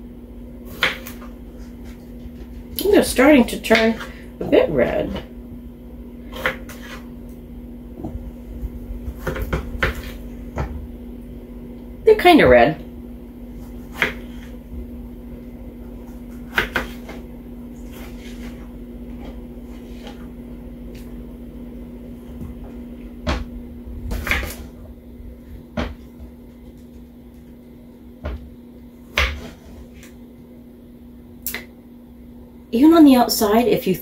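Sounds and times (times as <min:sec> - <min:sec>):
steady low hum: 0:00.0 - 0:34.0
knife cutting on plastic board: 0:06.3 - 0:07.1, 0:16.4 - 0:17.2, 0:29.2 - 0:30.1.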